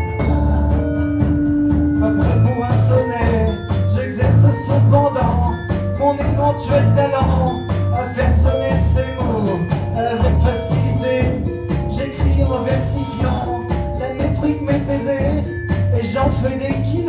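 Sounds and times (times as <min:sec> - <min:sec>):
drum kit beat: 0:00.0 - 0:17.0
melodic part: 0:00.0 - 0:17.0
upright double bass: 0:00.0 - 0:17.0.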